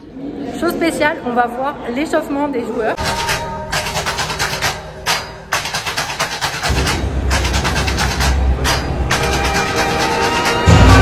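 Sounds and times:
music with steady beat: 0:03.0 - 0:11.0.

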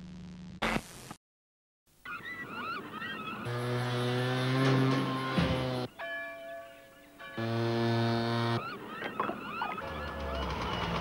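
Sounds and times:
squawking bird calls: 0:02.0 - 0:03.9, 0:08.5 - 0:11.0.

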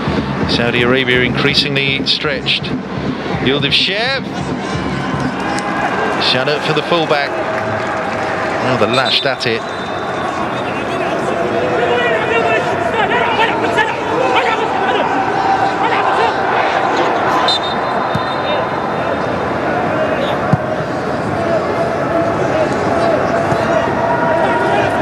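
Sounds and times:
stadium crowd noise: 0:00.0 - 0:25.0.

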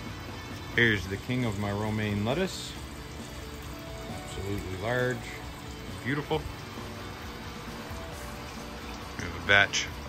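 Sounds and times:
background music: 0:00.0 - 0:10.0
water trickling: 0:00.0 - 0:10.0.

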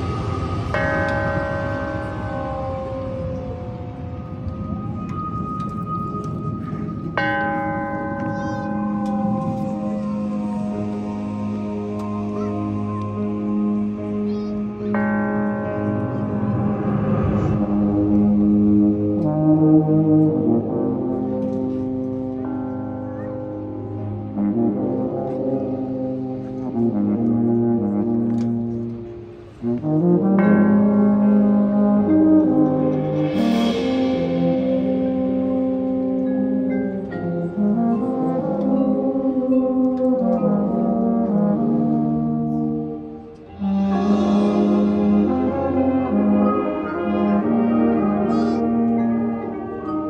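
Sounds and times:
ringing struck chord: 0:00.0 - 0:19.6, 0:43.4 - 0:49.4
brass band playing held chords: 0:05.8 - 0:50.0.

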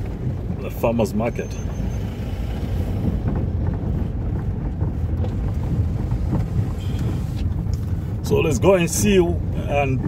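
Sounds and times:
tyres rumbling on dirt road: 0:00.0 - 0:10.0.

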